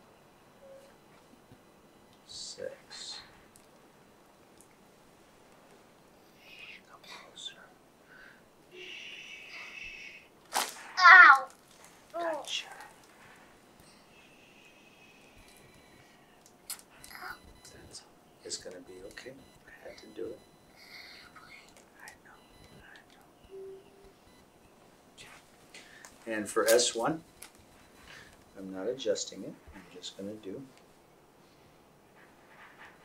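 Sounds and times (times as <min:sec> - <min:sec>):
soft steady hiss: 0:00.0 - 0:33.0
faint whispering: 0:06.3 - 0:07.8, 0:20.8 - 0:24.0, 0:25.2 - 0:25.5.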